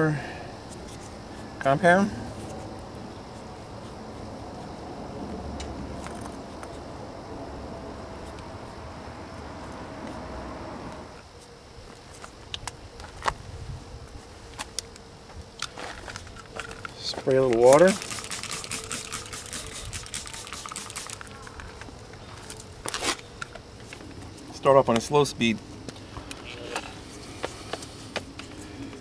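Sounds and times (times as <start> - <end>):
buzzing hum: 0.0 - 16.6, 17.9 - 24.6.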